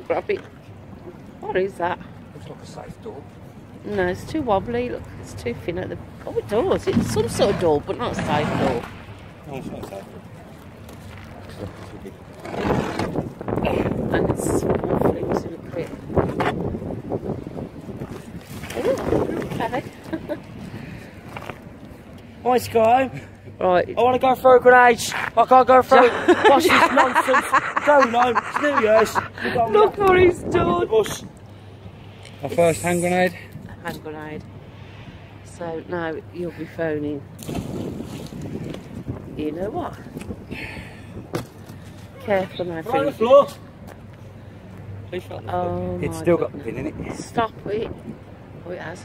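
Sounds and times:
wind buffeting microphone: 0.6s - 22.2s, 28.1s - 32.6s, 33.2s - 43.8s, 44.6s - 49.0s.

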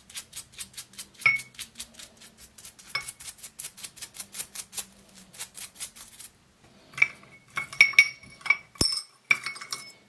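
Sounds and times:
metal parts clinking on glass: 7.0s - 10.0s.

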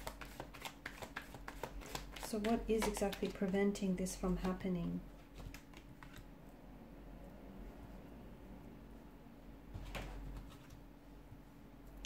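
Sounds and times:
cards being shuffled: 0.0s - 6.3s.

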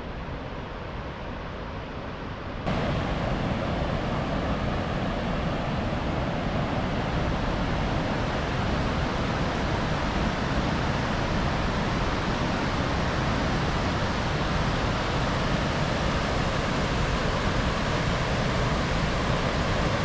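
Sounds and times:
river water rushing over weir: 2.7s - 15.1s.

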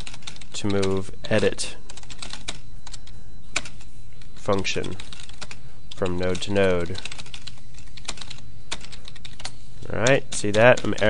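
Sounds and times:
typing on computer keyboard: 0.0s - 1.0s, 1.9s - 3.8s, 4.8s - 11.0s
steady low hum: 0.0s - 11.0s.

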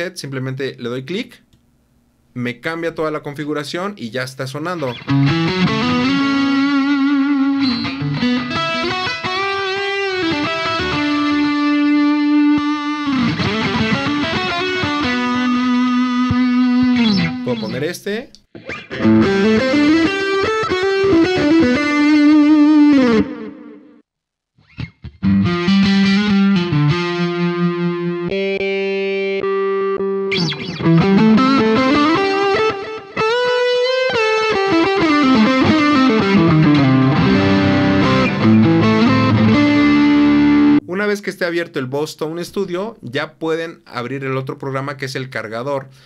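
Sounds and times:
electric guitar lead with effects: 4.8s - 17.9s, 18.5s - 24.0s, 24.6s - 40.8s.

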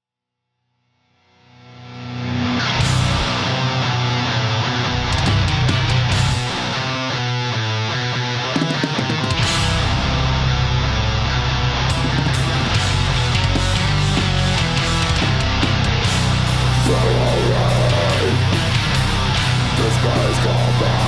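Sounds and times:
heavy metal band playing: 1.8s - 21.0s.

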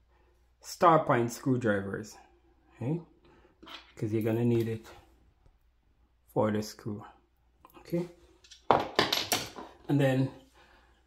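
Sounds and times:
screwdrivers clattering on wooden floor: 3.6s - 4.8s, 8.3s - 9.9s.

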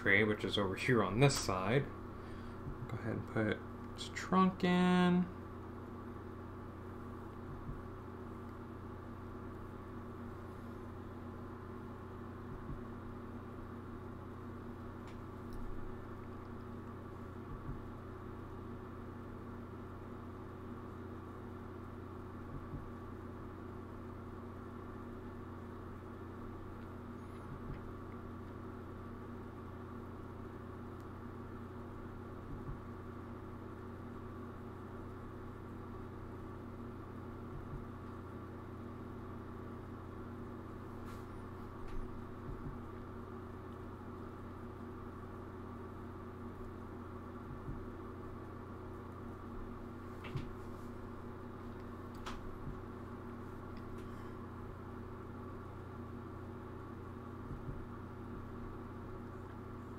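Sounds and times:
low electrical hum: 0.0s - 59.9s.

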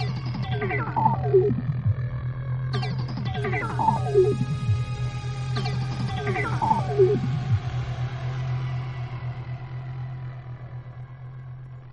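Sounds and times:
low synth drone: 0.0s - 11.6s.

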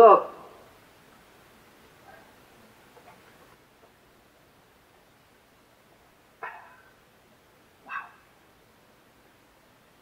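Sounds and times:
dog barking: 6.4s - 6.9s, 7.8s - 8.3s.

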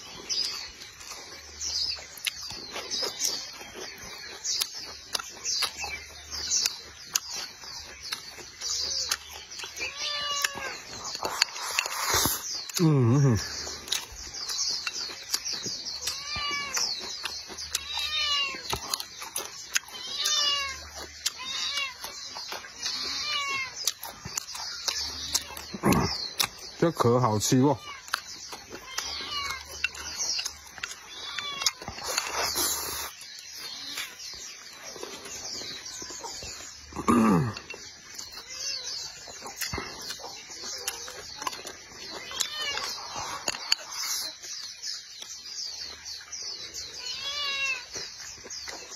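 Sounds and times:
animal calls: 0.0s - 48.9s
chewing: 0.0s - 48.9s.

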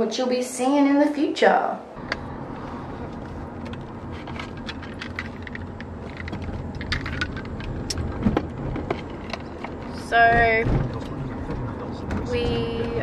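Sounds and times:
car interior rumble: 2.0s - 13.0s.

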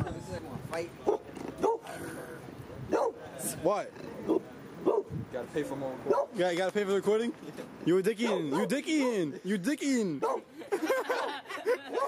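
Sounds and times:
dog barking: 1.0s - 1.9s, 2.9s - 3.2s, 4.3s - 5.1s, 6.1s - 6.4s, 8.2s - 8.8s, 10.2s - 10.5s, 11.1s - 12.0s.

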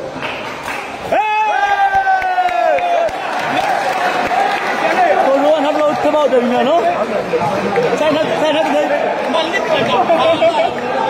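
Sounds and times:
spectators chattering: 2.8s - 11.0s.

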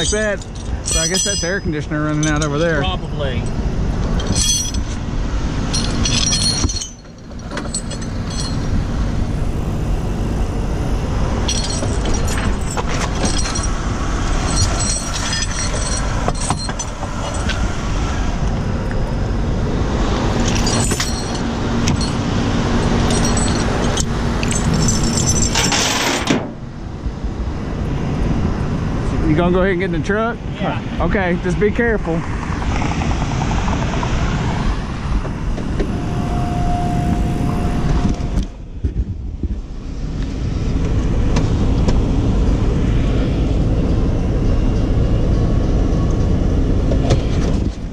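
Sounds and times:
metallic clinks and rattles: 0.0s - 9.1s, 11.4s - 17.7s, 20.4s - 26.3s.

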